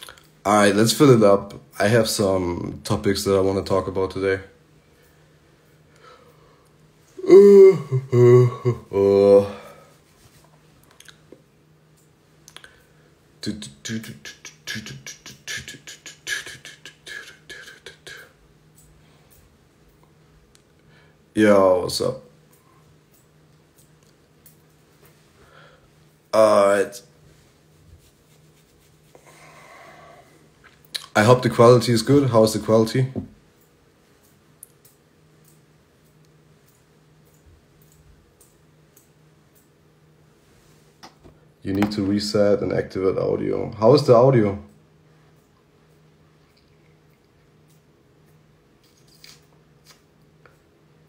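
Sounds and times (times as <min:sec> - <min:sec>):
low steady hum: 0:00.0 - 0:51.0
person speaking: 0:07.2 - 0:09.9, 0:13.4 - 0:18.4, 0:21.3 - 0:22.4, 0:26.3 - 0:27.2, 0:30.9 - 0:33.4, 0:41.6 - 0:44.7.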